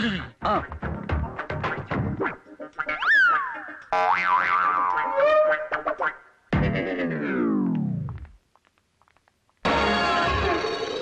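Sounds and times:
comic boing tone: 3.0s - 5.3s.

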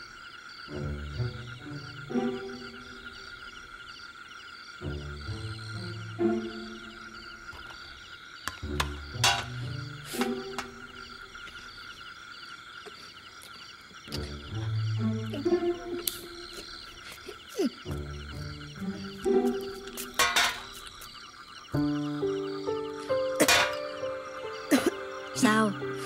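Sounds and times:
frogs croaking: 0.0s - 26.0s
high insect trill: 0.0s - 26.0s.

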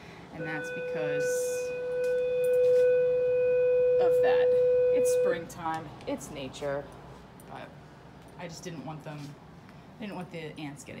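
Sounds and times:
steady electronic beep tone: 0.4s - 5.6s.

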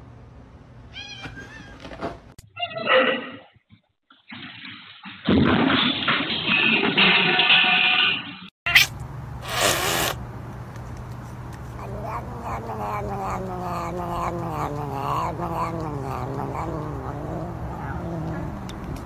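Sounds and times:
cat hissing: 8.7s - 10.2s, 11.7s - 19.0s
cat yowling: 11.8s - 18.8s.

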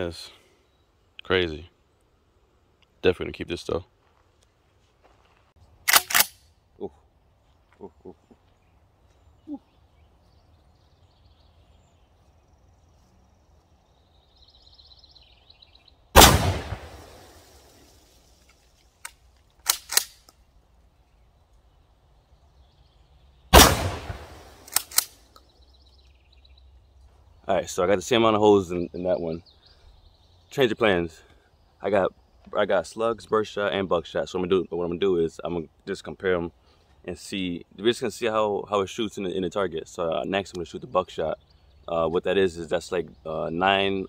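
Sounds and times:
shotgun shots: 16.2s - 17.6s, 23.5s - 25.1s.

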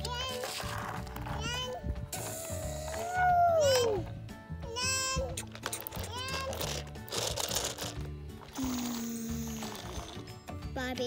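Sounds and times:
plastic toys knocking and rustling: 0.0s - 3.9s, 5.4s - 8.8s
background music: 0.0s - 11.0s.

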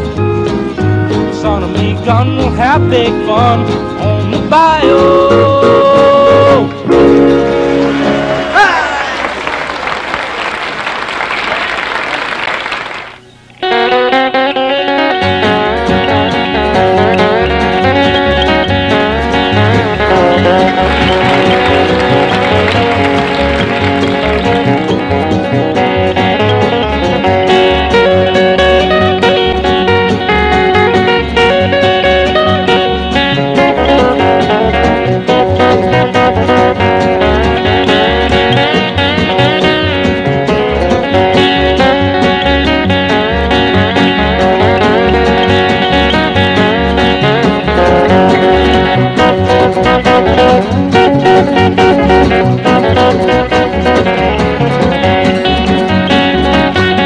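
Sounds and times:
banjo picking quick notes: 0.0s - 9.1s, 13.6s - 57.0s
applause: 7.6s - 13.3s, 20.4s - 25.0s
steady bass pulse: 15.5s - 30.0s.

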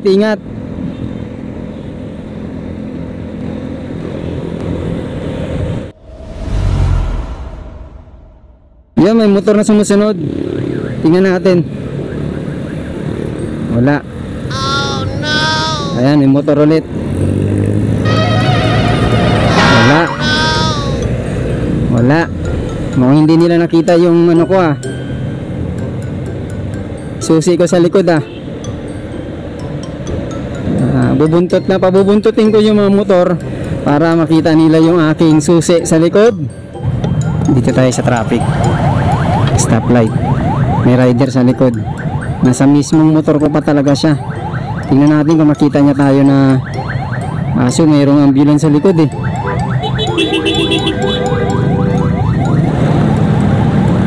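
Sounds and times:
wind and road noise: 0.0s - 54.0s
low rumble: 5.8s - 9.0s
background music: 14.5s - 16.2s, 18.1s - 54.0s
motor scooter engine hum: 49.2s - 54.0s.

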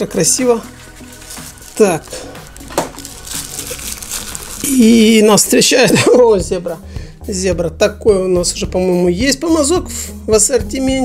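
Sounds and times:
wrapper rustling and crinkling: 0.0s - 6.0s
quiet background music: 0.0s - 11.0s.

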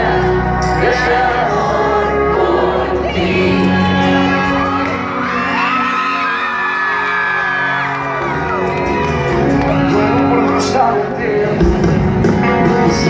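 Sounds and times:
live band music: 0.0s - 13.0s
crowd cheering and whooping: 3.1s - 10.6s.

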